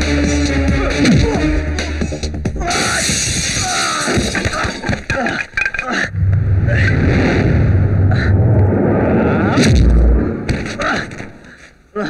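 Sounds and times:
heavy booming crash: 0:06.1 - 0:11.4
dense noise: 0:06.1 - 0:11.6.

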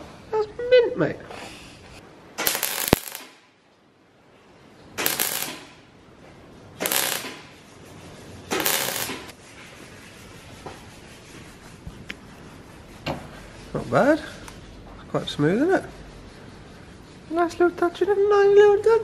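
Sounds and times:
welder arc crackle: 0:02.4 - 0:03.4, 0:05.0 - 0:05.8, 0:06.8 - 0:07.6, 0:08.5 - 0:09.4.

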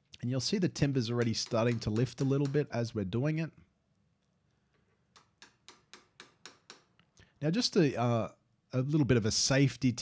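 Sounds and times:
chisel tapping into wood: 0:01.2 - 0:02.7, 0:05.1 - 0:07.0.

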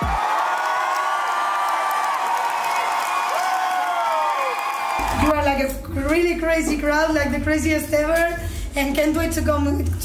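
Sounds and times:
concert crowd cheering and screaming: 0:00.0 - 0:05.3.

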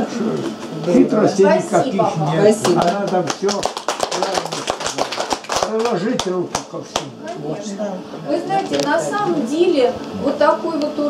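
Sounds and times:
people clapping: 0:02.5 - 0:07.4.

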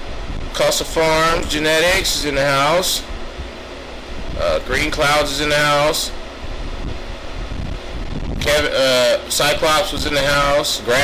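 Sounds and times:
ventilation fans humming: 0:00.0 - 0:11.0.

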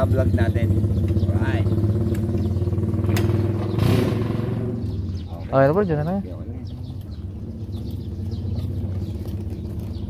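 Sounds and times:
motorcycle engine idling: 0:00.0 - 0:10.0.

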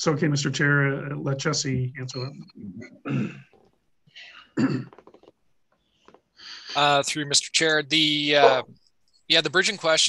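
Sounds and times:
man clearing his throat: 0:03.0 - 0:03.5, 0:04.6 - 0:05.0.

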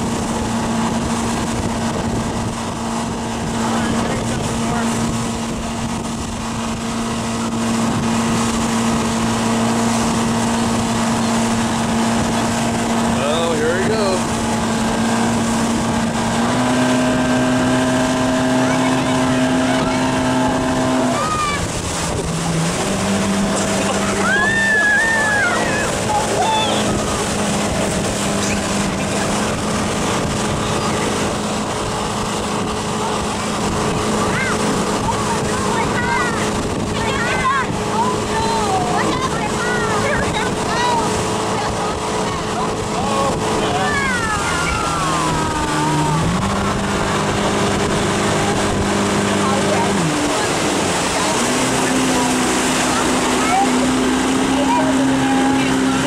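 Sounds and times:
motorboat engine running: 0:00.0 - 0:56.0
water noise: 0:00.0 - 0:56.0
wind: 0:00.0 - 0:56.0
short shouts: 0:24.1 - 0:27.0.

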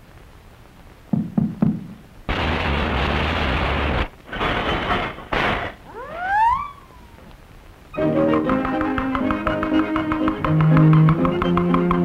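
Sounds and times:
crashing rattle: 0:02.3 - 0:06.0
cartoon thumps: 0:04.4 - 0:07.2
rising squealing glides: 0:05.9 - 0:07.4.

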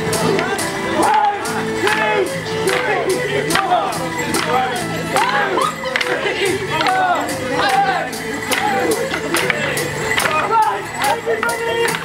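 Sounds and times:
folk dance tune: 0:00.0 - 0:12.0
wooden sticks clacking together: 0:00.3 - 0:12.0.

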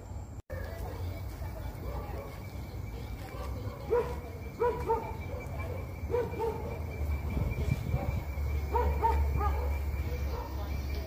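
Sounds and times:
dog barking and yipping: 0:03.2 - 0:06.9, 0:07.8 - 0:10.7.

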